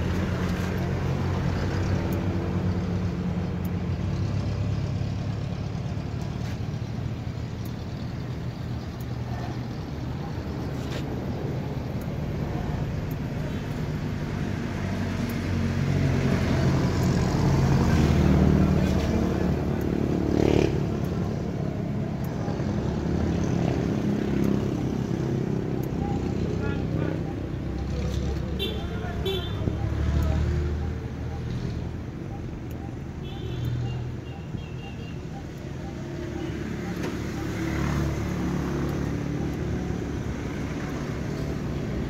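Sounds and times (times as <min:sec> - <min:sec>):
road traffic rumble: 0:00.0 - 0:42.0.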